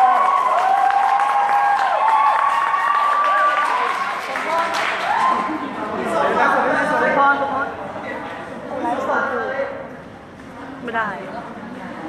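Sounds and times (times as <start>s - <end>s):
audience cheering and clapping: 0.0s - 5.7s.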